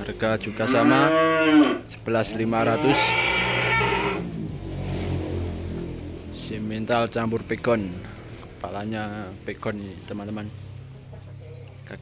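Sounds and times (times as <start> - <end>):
cattle mooing: 0.3 - 4.3.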